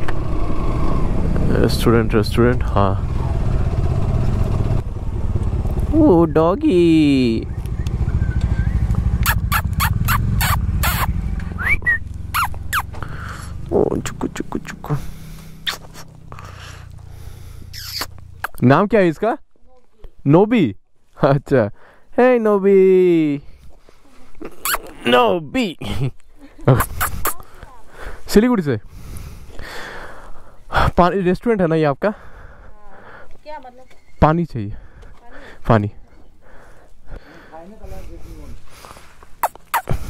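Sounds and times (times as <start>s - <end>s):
motorcycle engine idling: 0.1s - 18.4s
rising whistle-like calls: 7.4s - 12.9s, 17.7s - 18.1s
short sharp chirping calls: 7.4s - 13.5s, 15.6s - 16.1s, 17.6s - 18.6s, 24.4s - 25.1s, 26.7s - 27.4s, 39.4s - 40.0s
dog sniffing: 39.4s - 40.0s.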